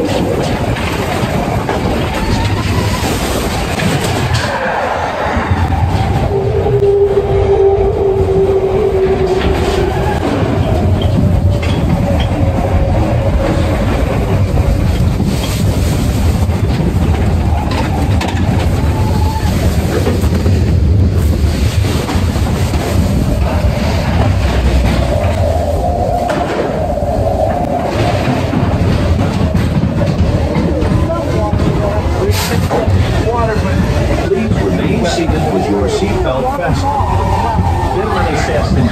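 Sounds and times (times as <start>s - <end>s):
coaster car rumbling on track: 0.0s - 38.9s.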